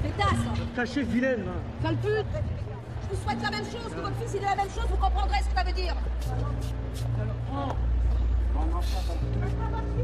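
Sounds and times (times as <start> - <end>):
city street rumble: 0.0 - 10.0
crowd voices outdoors: 0.0 - 10.0.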